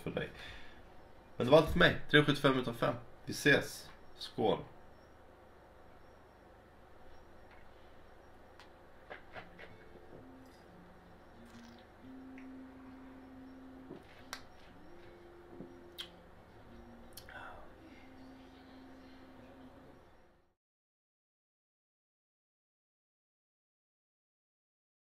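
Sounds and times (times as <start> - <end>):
faint low tune of held notes: 9.6 - 20.5
man sipping and swallowing: 11.4 - 11.9.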